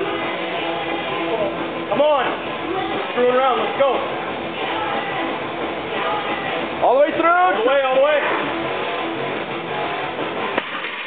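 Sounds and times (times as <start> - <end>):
barbell dropped on platform: 10.6 - 11.0.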